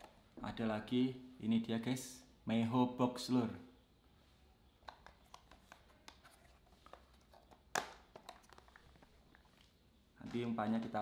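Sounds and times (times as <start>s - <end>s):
hands handling plastic box: 4.8s - 11.0s.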